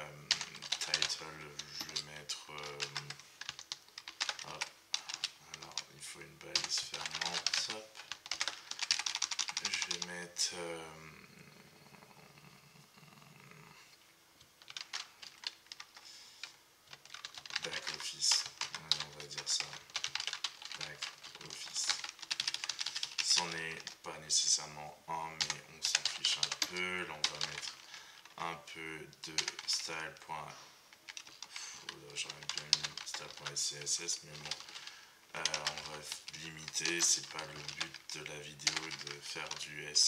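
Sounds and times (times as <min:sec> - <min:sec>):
computer keyboard typing: 0:00.2 - 0:05.9, 0:06.5 - 0:10.2, 0:14.6 - 0:24.6, 0:25.3 - 0:28.5, 0:29.1 - 0:30.3, 0:30.9 - 0:40.0.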